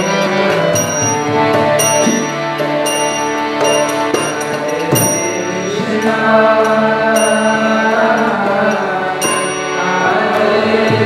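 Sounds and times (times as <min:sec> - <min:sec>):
hand cymbal ringing: 0:00.0 - 0:06.1, 0:07.1 - 0:08.4, 0:09.2 - 0:10.1
harmonium drone: 0:00.0 - 0:11.0
voices chanting together: 0:04.4 - 0:11.0.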